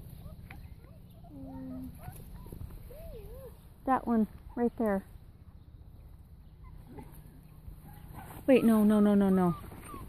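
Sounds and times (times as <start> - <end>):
low steady rumble: 0.0 - 10.0
puppy whimpering: 7.9 - 10.0.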